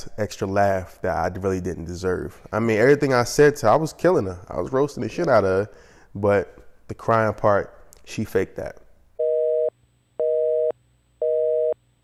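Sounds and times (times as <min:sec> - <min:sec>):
telephone busy signal beeps: 0:09.2 - 0:11.8.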